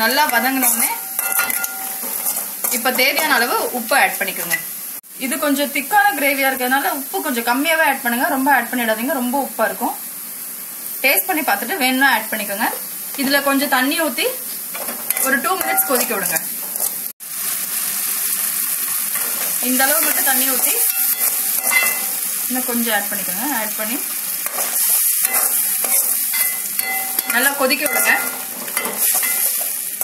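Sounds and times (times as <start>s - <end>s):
gravy sizzling in a pan: 0.0s - 30.0s.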